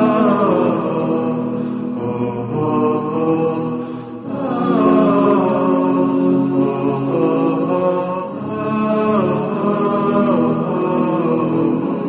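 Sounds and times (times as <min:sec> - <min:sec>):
solo voice chanting: 0:00.0 - 0:12.0.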